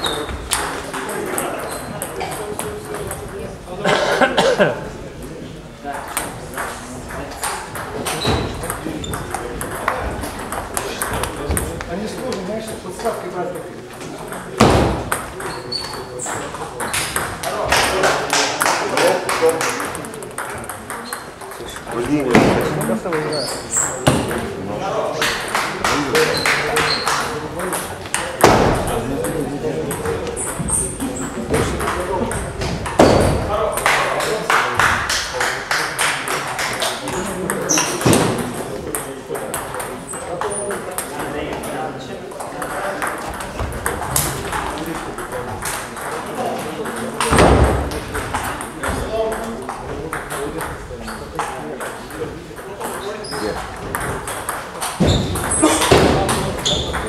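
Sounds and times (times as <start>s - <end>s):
people talking: 0.0s - 57.0s
table tennis ball knocks: 52.6s - 57.0s.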